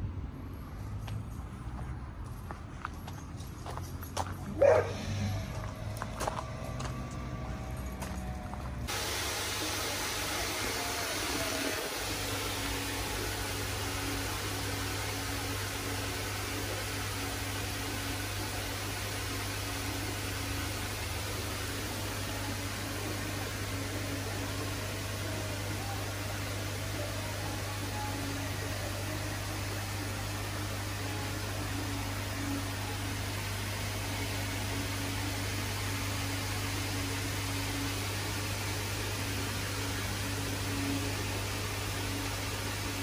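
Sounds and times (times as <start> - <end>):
low hum from pumps: 0.0 - 43.0.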